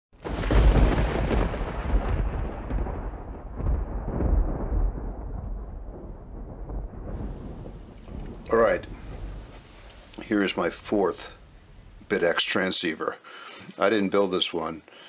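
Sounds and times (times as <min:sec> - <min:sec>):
loud deep rumble: 0:00.4 - 0:12.2.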